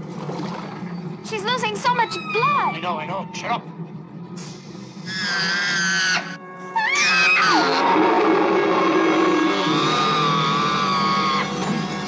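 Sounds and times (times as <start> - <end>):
killer whale squealing cry: 1.9 - 3.6, 5.0 - 11.6.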